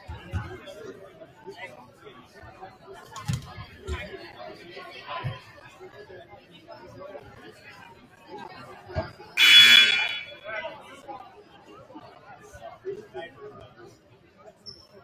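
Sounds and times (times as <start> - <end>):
crowd chatter: 0.0 - 15.0
scoreboard horn blast: 9.4 - 10.5.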